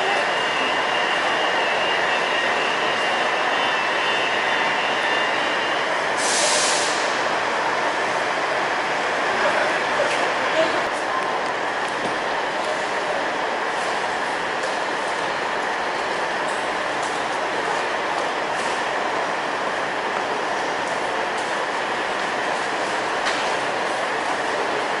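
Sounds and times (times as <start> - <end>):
diesel train idling: 0.0 - 25.0.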